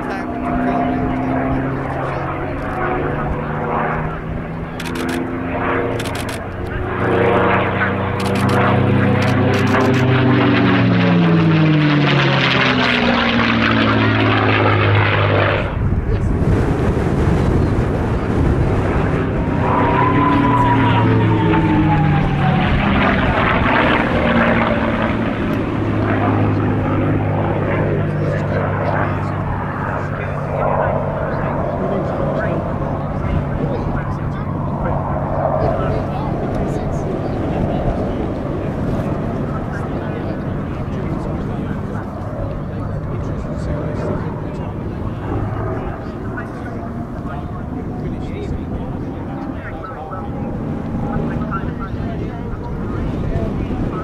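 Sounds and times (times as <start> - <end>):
people talking nearby: 0.0 - 54.0
propeller plane engine drone: 0.0 - 54.0.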